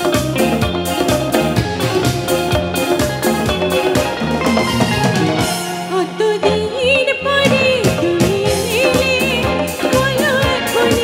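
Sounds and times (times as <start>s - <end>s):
band with drums and guitars: 0.0s - 11.0s
woman singing with vibrato: 5.5s - 11.0s.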